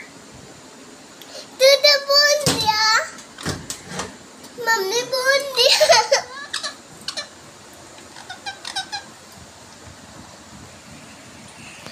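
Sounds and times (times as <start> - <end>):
parrot squeaking: 5.8 - 7.4, 8.0 - 9.2.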